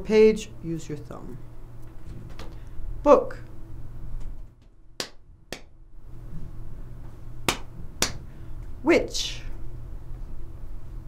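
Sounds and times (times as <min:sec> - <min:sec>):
low steady hum: 0:00.0 - 0:11.0
hands clapping together: 0:05.0 - 0:05.7, 0:07.5 - 0:08.2.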